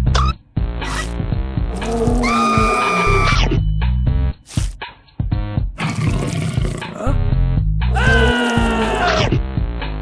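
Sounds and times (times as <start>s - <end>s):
background music: 0.0s - 10.0s
cartoon monster roar: 1.7s - 3.4s, 7.9s - 9.3s.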